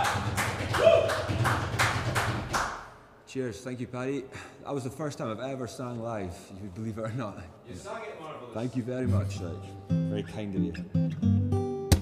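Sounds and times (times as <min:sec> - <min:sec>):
sparse applause: 0:00.0 - 0:02.9.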